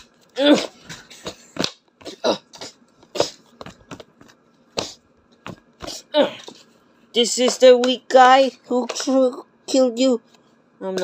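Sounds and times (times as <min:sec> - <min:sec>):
plush toys thumping together: 0:03.1 - 0:06.0.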